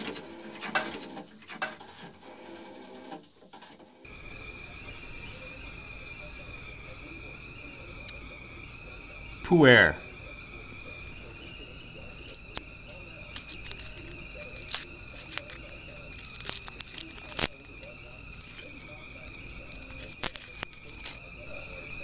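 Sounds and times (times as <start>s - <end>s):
paper wrapper tearing and crinkling: 12.0s - 21.6s.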